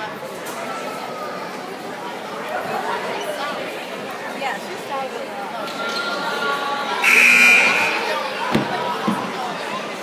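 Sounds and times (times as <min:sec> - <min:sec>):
crowd chatter: 0:00.0 - 0:10.0
scoreboard buzzer: 0:07.0 - 0:08.1.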